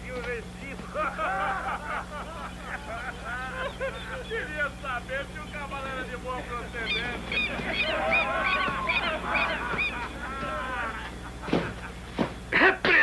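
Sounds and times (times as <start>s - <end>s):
flock of birds calling: 0.0s - 13.0s
steady low hum: 0.0s - 13.0s.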